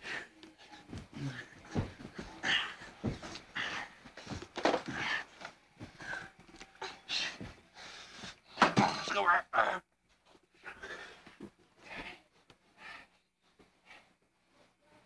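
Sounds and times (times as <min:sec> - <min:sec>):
breathy panting: 0:00.0 - 0:08.6, 0:10.5 - 0:14.4
small vocal noises: 0:00.0 - 0:09.9.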